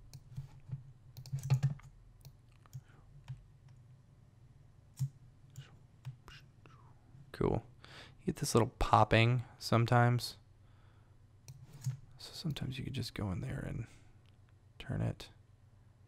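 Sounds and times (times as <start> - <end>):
low steady hum: 0.0 - 16.0.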